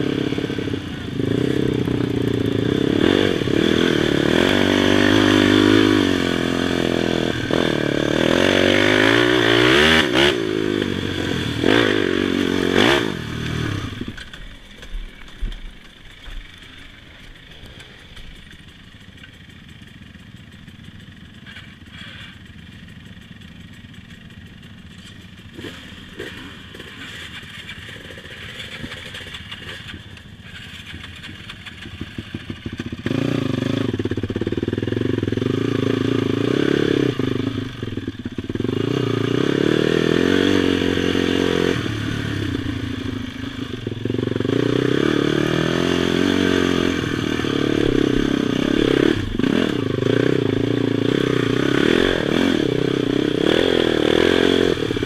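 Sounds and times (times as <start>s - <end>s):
quad engine revving: 0.0s - 14.4s, 25.0s - 55.0s.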